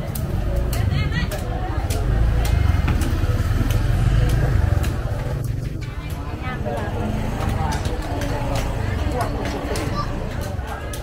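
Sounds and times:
people talking: 0.0s - 11.0s
vehicle engine rumble: 0.0s - 11.0s.

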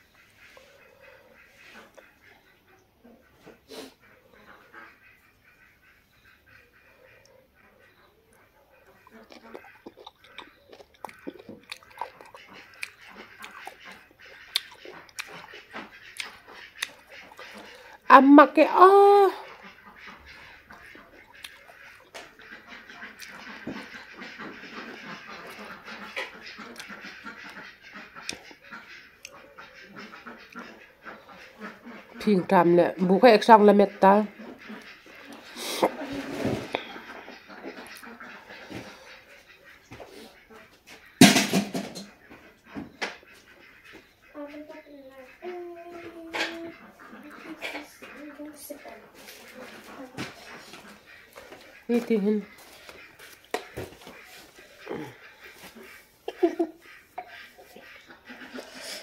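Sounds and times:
wet chewing and mouth smacks: 8.3s - 18.1s, 20.7s - 30.7s, 37.7s - 38.2s, 49.8s - 56.0s
faint animal calls: 42.1s - 59.0s.

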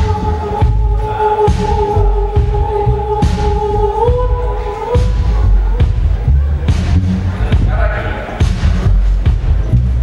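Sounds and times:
heavy bass line: 0.0s - 10.0s.

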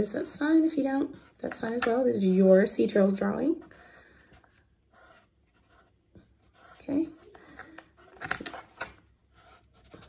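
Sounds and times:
marker scratching on paper: 3.4s - 7.4s, 9.3s - 10.0s.

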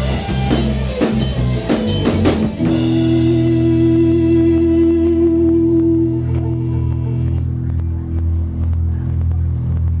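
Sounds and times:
electric bass and guitar drone: 0.0s - 10.0s.

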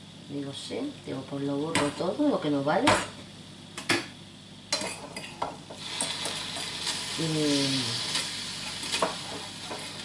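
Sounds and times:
meat sizzling in a pan: 4.7s - 10.0s.

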